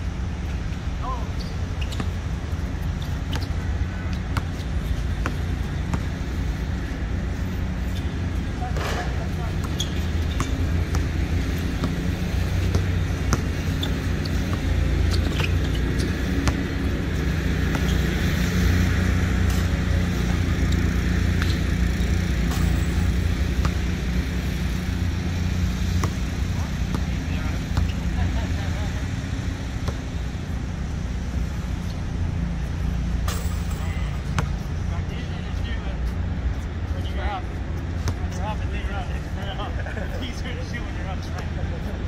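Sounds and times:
distant road traffic rumble: 0.0 - 42.0.

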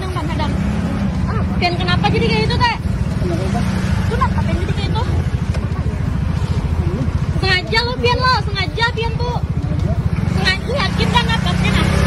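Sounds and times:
faint voices: 0.0 - 12.0
scooter engine idling: 0.0 - 12.0.

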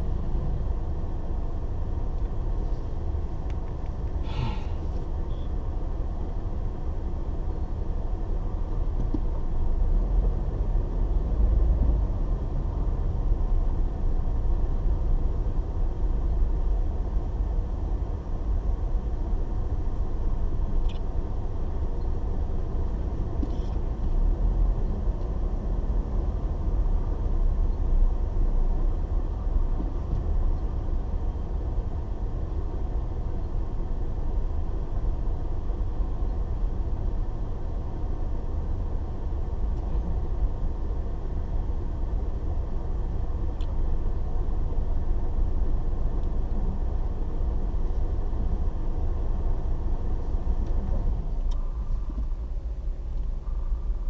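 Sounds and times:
car engine rumble: 0.0 - 54.0
road noise inside car: 0.0 - 54.0.

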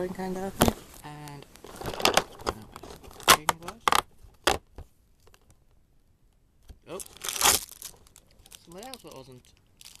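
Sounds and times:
cardboard tearing and rustling: 6.9 - 8.1.

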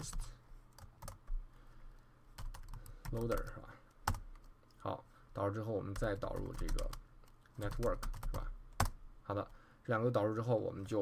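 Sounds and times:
computer keyboard typing: 0.7 - 1.3, 2.4 - 4.5, 5.9 - 9.0.

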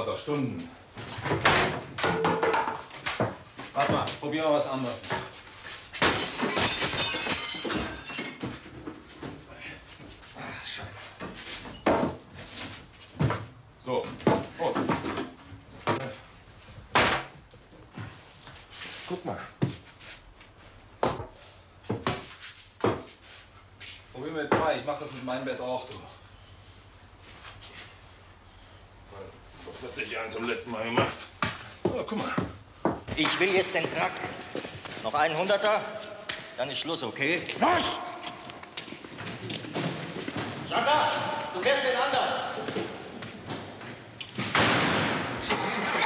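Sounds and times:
glass breaking: 6.0 - 9.0.

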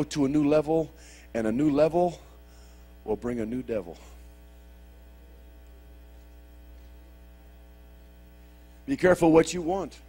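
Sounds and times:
man speaking: 0.0 - 2.4, 3.0 - 4.2, 8.9 - 10.0
electrical mains hum: 0.0 - 10.0.

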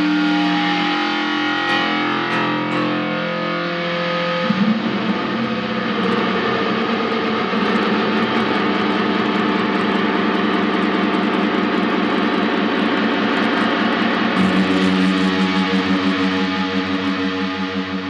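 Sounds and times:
distorted noise drone: 0.0 - 18.0
pitched tones: 14.4 - 18.0.

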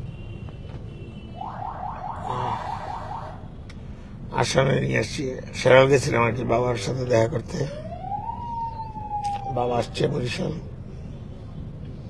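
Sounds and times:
electronic siren rising sweeps: 1.4 - 3.5.

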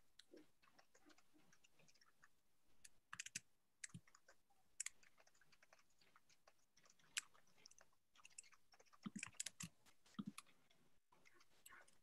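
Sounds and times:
computer keyboard typing: 3.1 - 7.4, 8.2 - 10.4.

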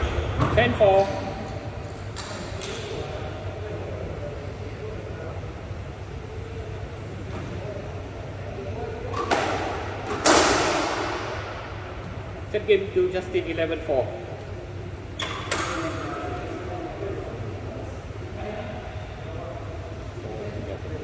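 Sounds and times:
faint voices: 1.0 - 10.0, 10.9 - 21.0.

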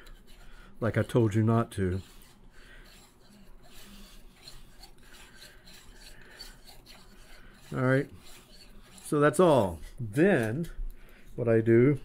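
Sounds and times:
thread rubbing while wound: 0.0 - 10.6
fingers brushing: 0.0 - 10.8.

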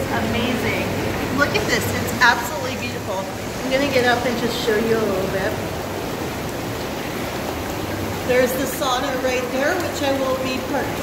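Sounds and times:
hot tub water bubbling: 0.0 - 11.0.

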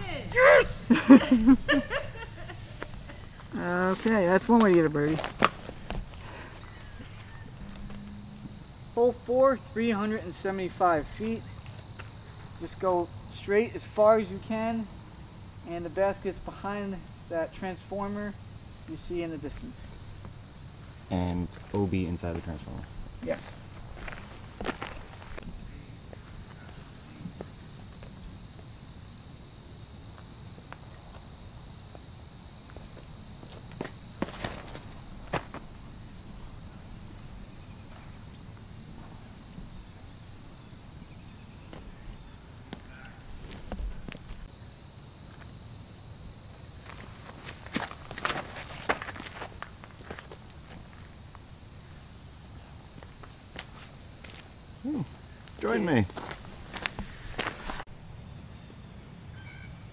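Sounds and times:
high-pitched insect drone: 0.0 - 59.9.

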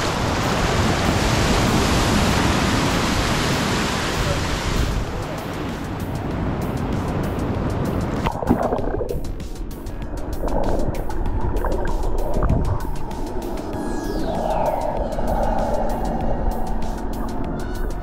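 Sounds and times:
sea waves washing onto beach: 0.0 - 18.0
muffled underwater sound: 8.2 - 9.4, 10.0 - 18.0.

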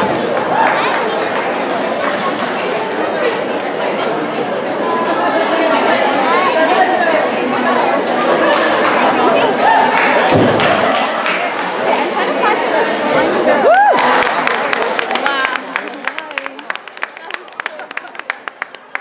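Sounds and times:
crowd cheering: 0.0 - 2.9, 8.1 - 12.5, 13.1 - 19.0
spectators chattering: 0.0 - 19.0.

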